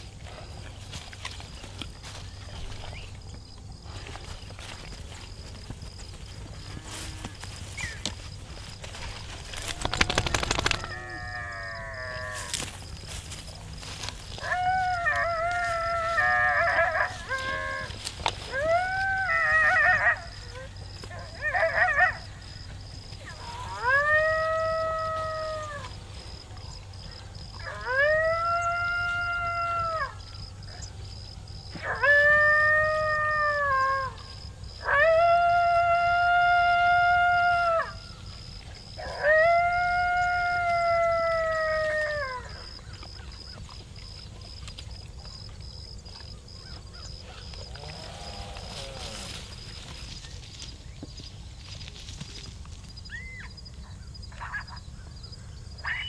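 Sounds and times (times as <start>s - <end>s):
recorded coyote howls: 9.4s - 12.7s, 14.1s - 22.6s, 23.2s - 31.0s, 31.7s - 38.3s, 38.9s - 43.6s, 53.1s - 54.8s, 55.8s - 56.0s.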